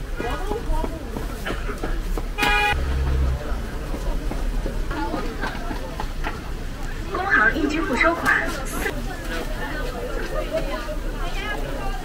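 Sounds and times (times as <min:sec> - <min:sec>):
street stall noise: 0:00.0 - 0:12.0
short horn toot: 0:02.4 - 0:03.0.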